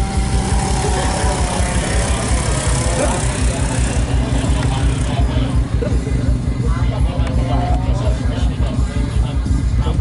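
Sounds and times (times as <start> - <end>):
motorcycle engine at high revs: 0.0 - 7.4.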